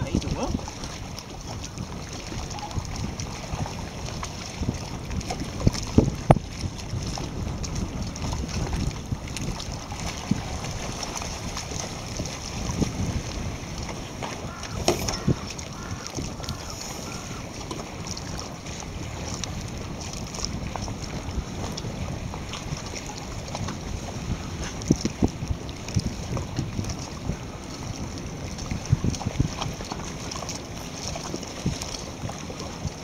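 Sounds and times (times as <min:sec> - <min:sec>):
wind noise on microphone: 0:00.0 - 0:33.0
sharp knocks: 0:14.8 - 0:15.3.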